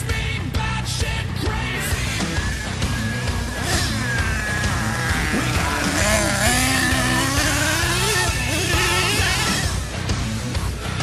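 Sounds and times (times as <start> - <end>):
small nitro engine revving: 2.0 - 10.1.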